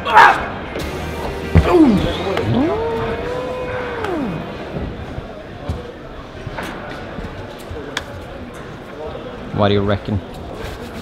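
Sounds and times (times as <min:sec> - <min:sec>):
person shouting: 0:01.6 - 0:04.5.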